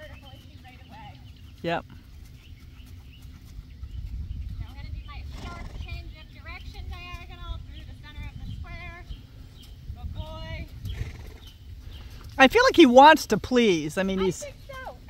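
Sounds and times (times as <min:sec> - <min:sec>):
wind rumble on microphone: 0:02.3 - 0:12.7.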